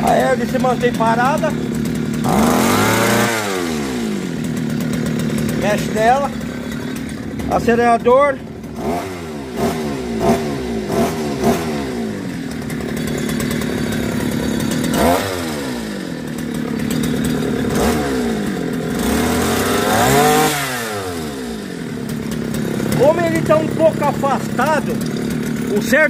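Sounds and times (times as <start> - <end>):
two-stroke outboard motor revving: 0.0 - 26.0.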